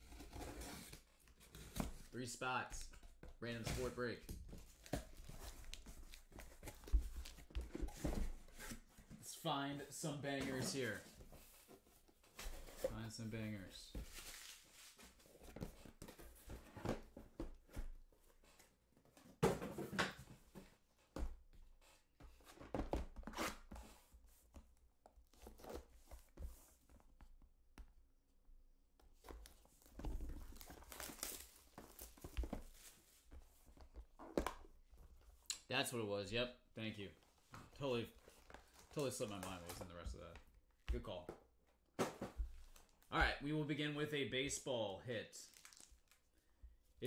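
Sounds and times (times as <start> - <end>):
cardboard rustling: 2.9 - 13.2, 29.2 - 35.3
boxes set down: 19.3 - 20.4, 42.0 - 42.6.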